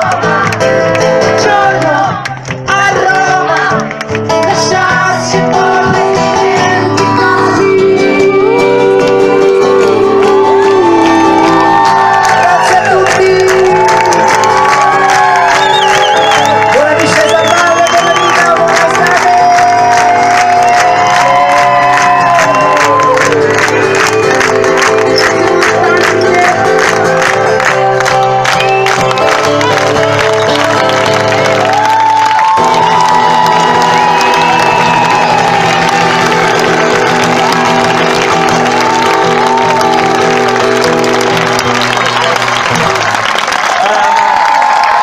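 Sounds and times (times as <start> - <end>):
audience clapping along: 0.0 - 7.2, 8.7 - 45.0
live music from outdoor stage: 0.0 - 45.0.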